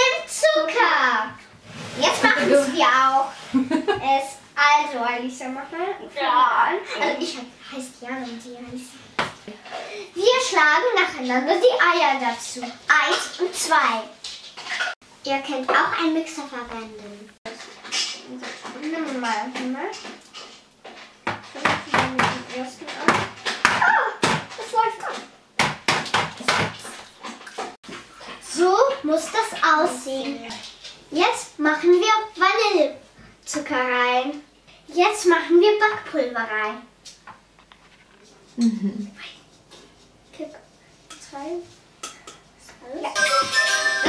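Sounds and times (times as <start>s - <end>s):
young girls talking: 0.0s - 1.4s, 2.0s - 9.1s, 9.9s - 14.2s, 15.2s - 17.4s, 18.2s - 20.0s, 21.5s - 25.3s, 28.5s - 36.9s, 41.2s - 41.7s, 42.6s - 43.2s.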